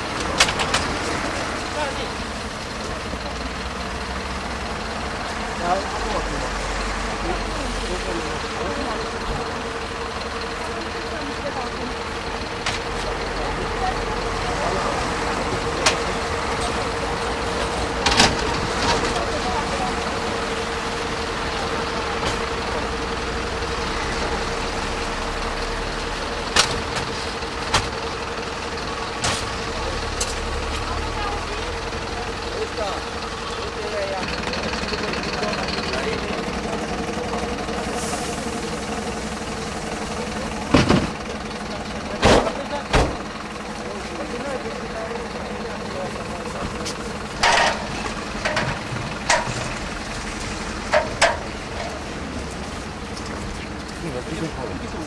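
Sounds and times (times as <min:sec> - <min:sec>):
vehicle engine idling: 0:00.0 - 0:55.0.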